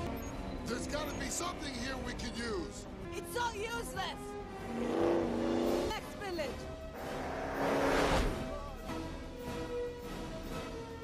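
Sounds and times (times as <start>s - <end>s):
film score music: 0.0s - 11.0s
car passing close by: 7.0s - 8.4s.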